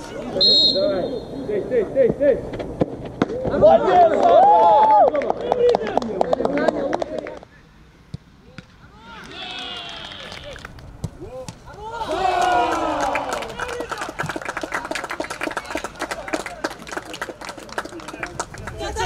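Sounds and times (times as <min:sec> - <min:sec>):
players shouting: 0:08.8 - 0:10.6, 0:11.2 - 0:16.6
quick claps: 0:12.7 - 0:18.8.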